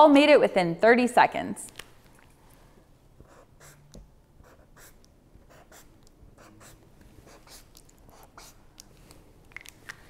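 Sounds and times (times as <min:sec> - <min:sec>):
marker strokes on chalkboard: 0:03.2 - 0:08.7.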